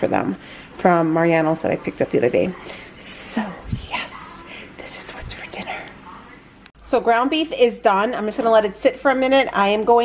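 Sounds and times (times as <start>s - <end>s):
person whispering: 3.3s - 6.3s.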